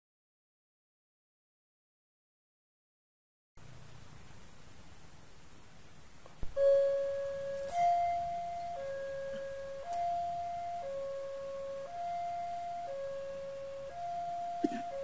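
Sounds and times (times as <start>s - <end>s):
two-tone crossing warning signal: 6.5s - 15.0s
alarm switch click: 9.8s - 10.2s.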